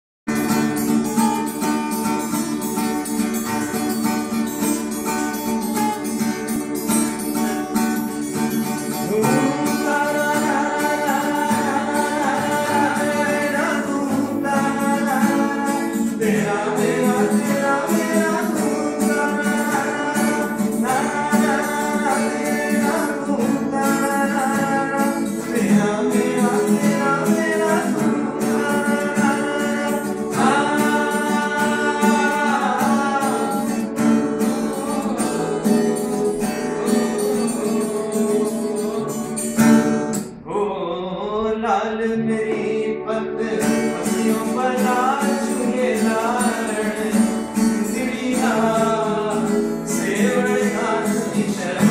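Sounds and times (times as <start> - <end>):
acoustic guitar playing: 0.3 - 51.9
person singing: 8.8 - 51.9.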